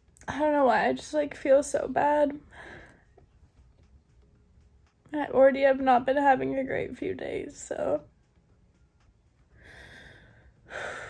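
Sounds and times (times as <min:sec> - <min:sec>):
woman breathing: 0:02.4 - 0:03.5, 0:09.4 - 0:11.0.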